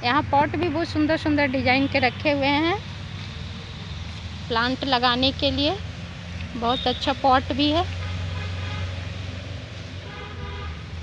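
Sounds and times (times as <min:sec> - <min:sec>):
road traffic hum: 0:00.0 - 0:11.0
vehicle horn: 0:06.6 - 0:07.1, 0:08.0 - 0:09.0, 0:10.0 - 0:10.9.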